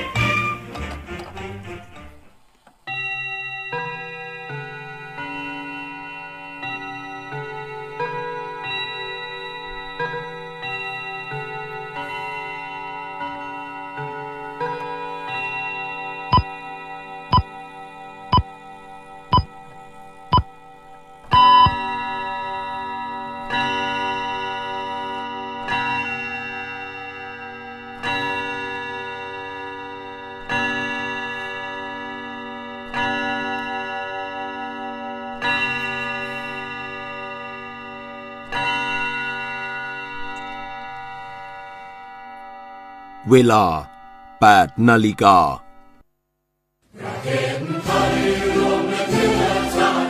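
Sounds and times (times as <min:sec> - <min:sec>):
ringing clock chime: 0:02.9 - 0:44.8.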